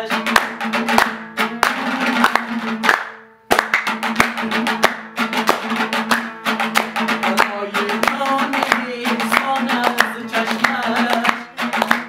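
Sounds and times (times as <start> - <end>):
lute strummed fast: 0.0 - 12.0
hand claps: 0.1 - 12.0.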